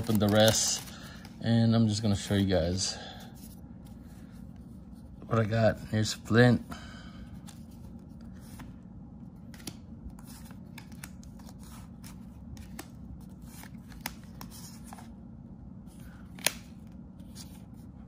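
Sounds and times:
card snap: 0:16.3 - 0:16.8.

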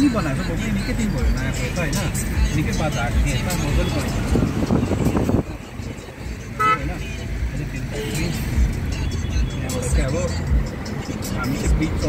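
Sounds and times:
car engine rumble: 0:00.0 - 0:12.0
road noise: 0:00.0 - 0:12.0
vehicle horn toot: 0:06.5 - 0:07.2.

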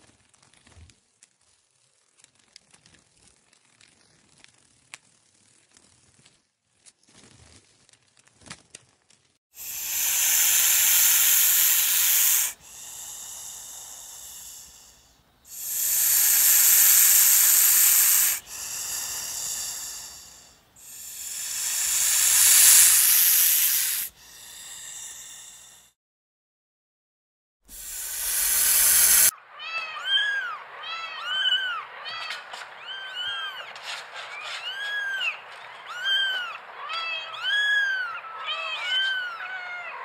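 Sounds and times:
faint background hiss: 0:09.6 - 0:25.9.

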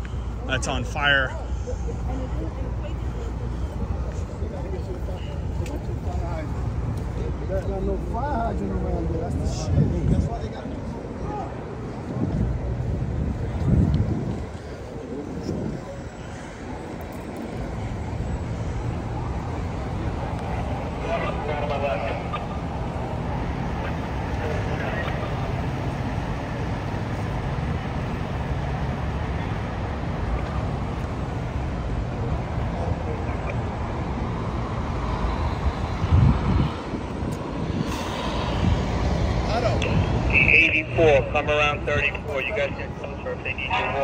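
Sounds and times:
traffic rumble: 0:00.0 - 0:44.0
indistinct voices: 0:39.3 - 0:44.0.

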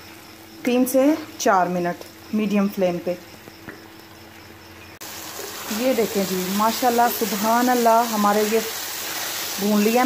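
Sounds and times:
vegetables sizzling in oil: 0:04.9 - 0:10.0.

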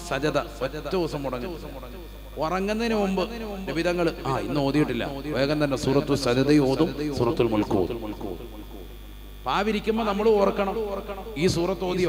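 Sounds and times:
electrical mains hum: 0:00.0 - 0:12.0
man talking: 0:02.4 - 0:08.4, 0:09.5 - 0:12.0.

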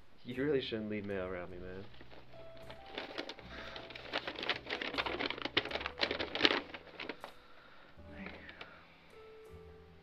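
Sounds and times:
soft background music: 0:00.0 - 0:10.0
paper rustling and crackling: 0:01.6 - 0:08.8.

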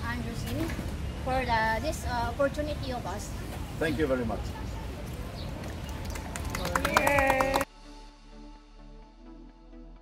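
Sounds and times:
people clapping: 0:05.5 - 0:07.7
voices cheering: 0:06.0 - 0:07.7.

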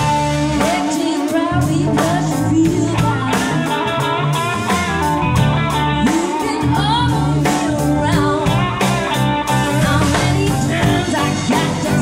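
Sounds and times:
bass guitar: 0:00.0 - 0:12.0
drum kit: 0:00.0 - 0:12.0
electric guitar: 0:00.0 - 0:12.0
keyboards: 0:00.0 - 0:12.0
woman singing lead: 0:00.0 - 0:12.0.

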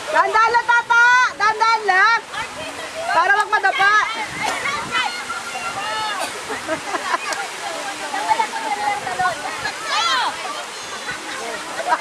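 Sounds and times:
people calling and shouting: 0:00.0 - 0:12.0.

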